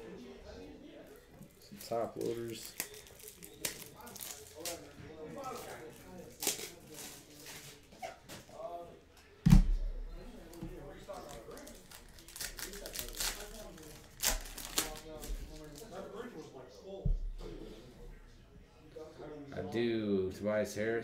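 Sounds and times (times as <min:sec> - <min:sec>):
plastic wrappers crinkling and tearing: 0:01.5 - 0:07.8, 0:11.1 - 0:16.0
heavy thump: 0:17.0 - 0:17.7.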